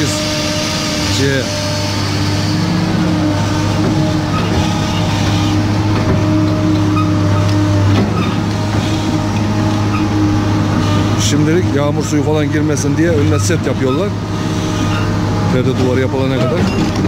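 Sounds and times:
bucket working soil: 0:00.0 - 0:17.0
excavator diesel engine humming: 0:00.0 - 0:17.0.

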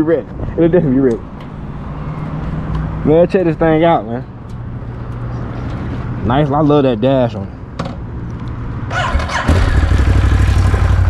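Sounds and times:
low vehicle hum: 0:00.8 - 0:11.0.

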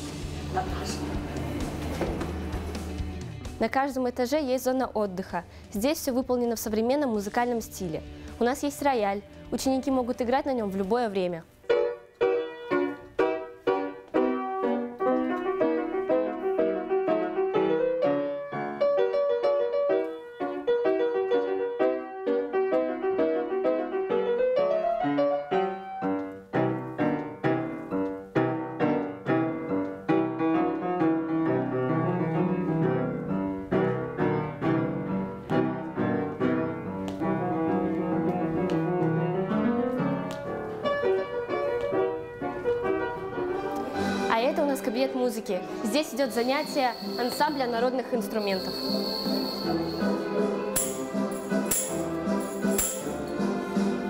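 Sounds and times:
grand piano piece: 0:00.0 - 0:54.0.

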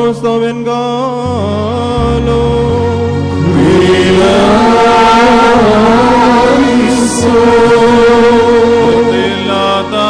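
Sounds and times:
held low drone notes: 0:00.0 - 0:10.0
voices chanting: 0:03.5 - 0:10.0.

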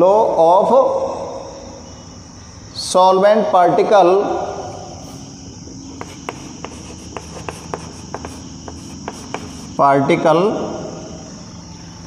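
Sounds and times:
chalk tapping on blackboard: 0:05.9 - 0:09.8.

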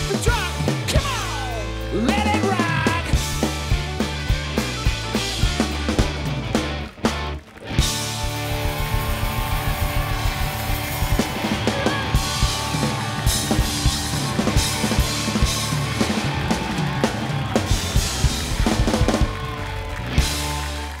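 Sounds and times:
bass guitar: 0:00.0 - 0:21.0
drum kit: 0:00.0 - 0:21.0
electric guitars: 0:00.0 - 0:21.0.

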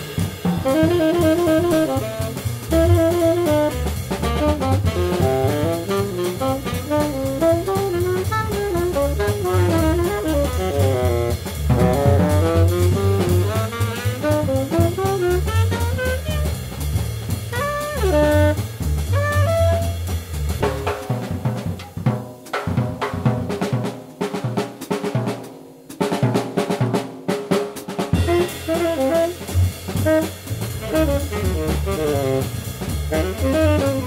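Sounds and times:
double bass: 0:00.0 - 0:21.1, 0:28.2 - 0:34.0
drum kit playing: 0:00.0 - 0:34.0
saxophone melody: 0:00.6 - 0:16.5, 0:17.5 - 0:20.1, 0:28.2 - 0:34.0.

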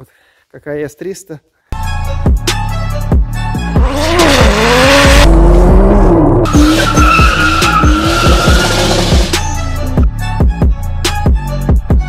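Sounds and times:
music with steady beat: 0:01.8 - 0:12.0
car engine revving: 0:03.6 - 0:09.4
tyres squealing: 0:06.5 - 0:09.4.

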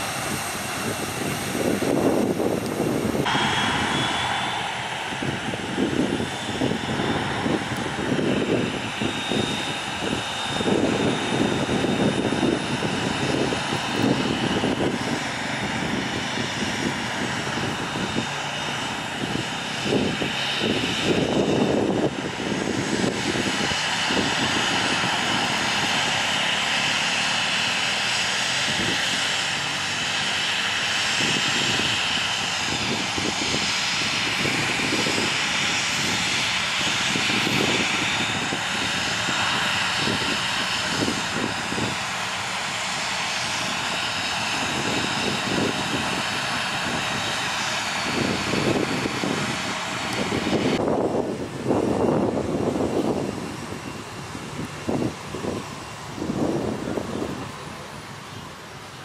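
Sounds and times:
jet engines rushing with high whine: 0:00.0 - 0:59.0.

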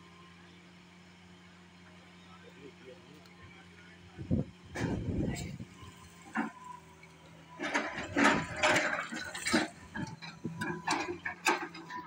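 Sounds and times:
excavator engine hum: 0:00.0 - 0:12.0.

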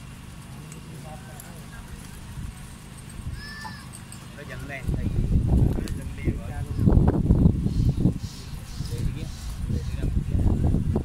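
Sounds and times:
wind rumble on microphone: 0:04.7 - 0:11.0.

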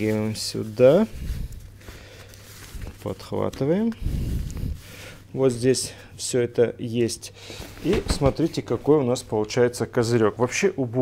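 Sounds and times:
fabric and frame handling noise: 0:00.0 - 0:06.0, 0:07.4 - 0:10.7.

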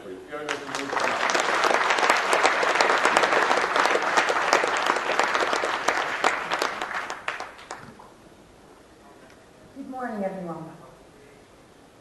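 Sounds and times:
audience applauding: 0:00.3 - 0:08.1.

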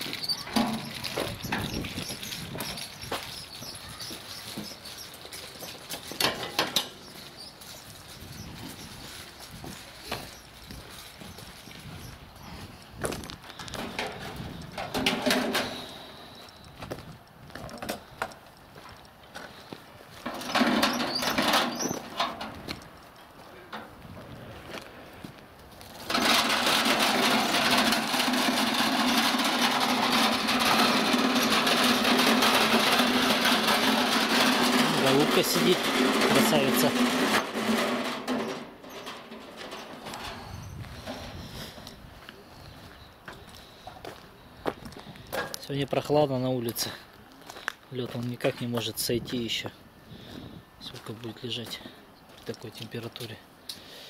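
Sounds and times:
cart wheels rattling on asphalt: 0:00.0 - 0:16.5, 0:20.2 - 0:23.2, 0:25.8 - 0:43.0.

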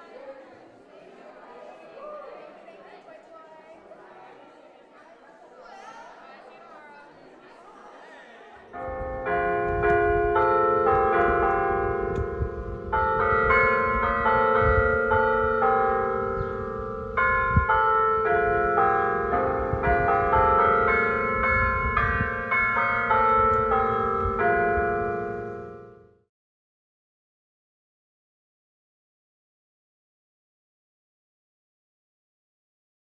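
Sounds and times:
church bells ringing: 0:08.7 - 0:26.3.

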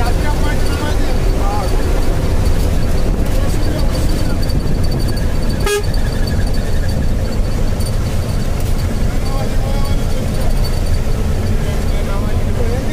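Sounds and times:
road and engine rumble: 0:00.0 - 0:12.9
short car horn toot: 0:05.6 - 0:06.0.

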